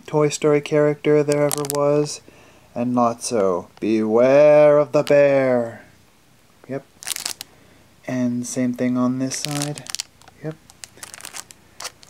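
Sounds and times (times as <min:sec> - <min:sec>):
plastic sleeve crinkling: 0:01.3 - 0:02.0, 0:07.0 - 0:07.5, 0:09.2 - 0:12.0.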